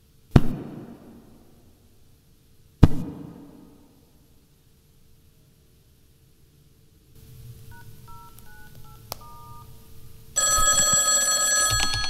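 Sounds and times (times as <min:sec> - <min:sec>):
telephone keypad beeps: 0:07.7 - 0:09.7, 0:10.4 - 0:12.0
telephone ringing: 0:07.7 - 0:12.0.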